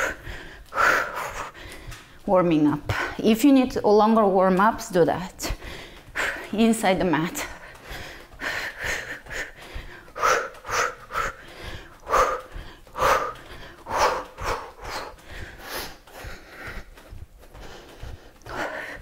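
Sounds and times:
woman breathing hard: 0.0 - 2.2, 5.4 - 6.5, 7.4 - 19.0.

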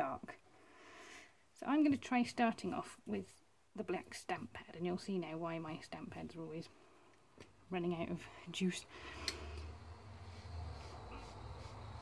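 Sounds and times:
low rumble: 9.3 - 12.0.

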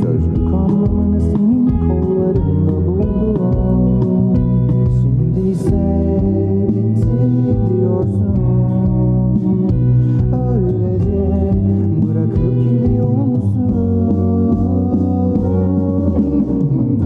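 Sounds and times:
muffled pop song: 0.0 - 17.0.

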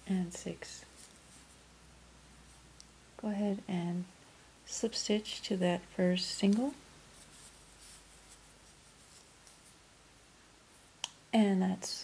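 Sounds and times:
yarn scratching on crochet hook: 6.4 - 9.8.

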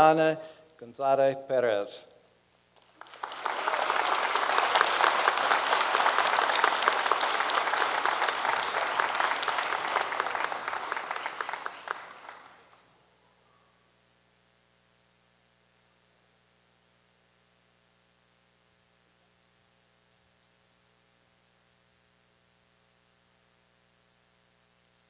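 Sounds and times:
audience applause: 2.8 - 12.8.

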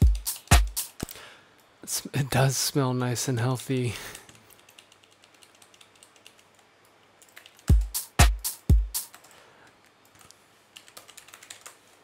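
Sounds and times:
electronic kick drum: 0.0 - 1.0, 7.7 - 9.1
keyboard and mouse clicks: 4.2 - 7.7, 9.0 - 12.0.

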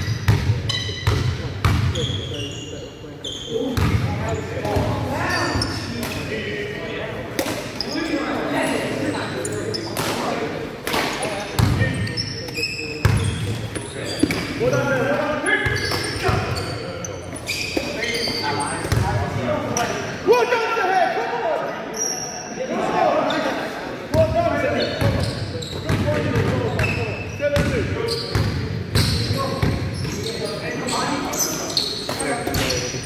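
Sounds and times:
players' voices and shouts echoing: 0.0 - 33.0.

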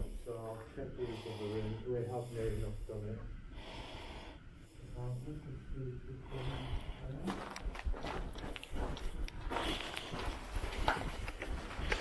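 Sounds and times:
footsteps on debris: 7.2 - 12.0.

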